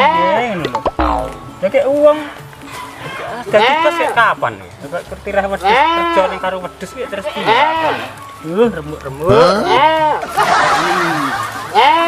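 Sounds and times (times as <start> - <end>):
goat bleating: 0.0 - 0.6, 3.1 - 4.3, 5.5 - 8.2, 9.3 - 10.9, 11.7 - 12.0.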